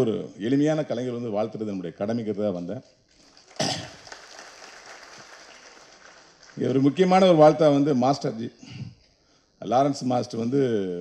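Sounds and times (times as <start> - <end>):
faint audience applause: 3.2 - 7.4.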